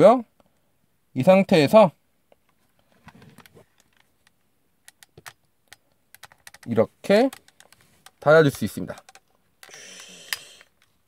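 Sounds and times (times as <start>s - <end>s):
toy phone click: 9.0s - 10.8s.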